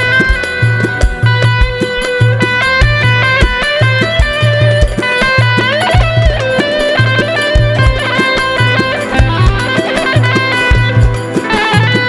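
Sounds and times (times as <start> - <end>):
amplified plucked-string melody: 0.0 - 12.0
driving drum and bass beat: 0.0 - 12.0.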